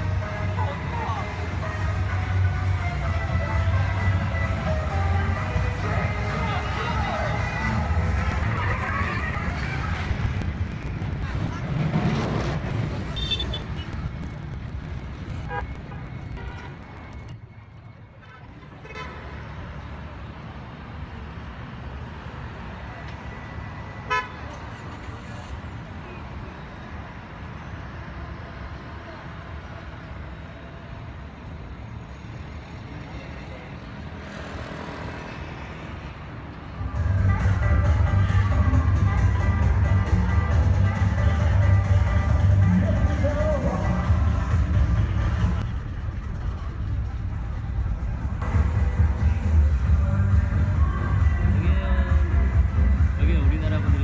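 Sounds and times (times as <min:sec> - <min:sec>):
traffic noise: 0:00.0 - 0:54.0
car horn toot: 0:13.1 - 0:14.0, 0:24.0 - 0:24.4.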